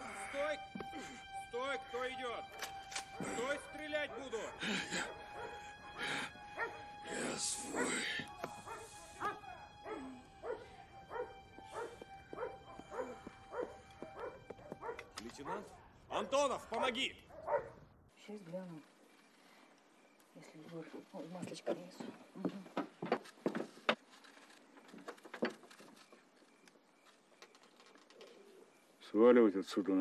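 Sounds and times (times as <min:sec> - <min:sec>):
background music: 0:00.0 - 0:17.7
dogs barking and yelping: 0:04.1 - 0:05.7, 0:06.6 - 0:06.8, 0:07.7 - 0:16.0, 0:17.3 - 0:17.8.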